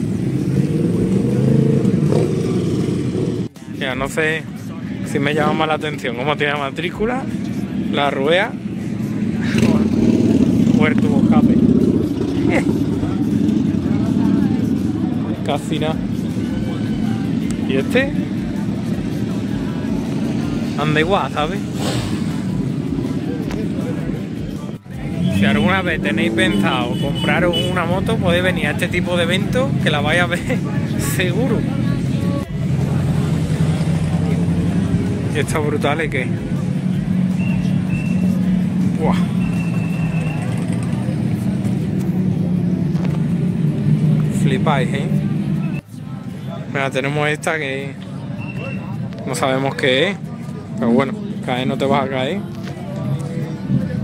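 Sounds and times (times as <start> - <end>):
engine droning: 4.5 - 54.0.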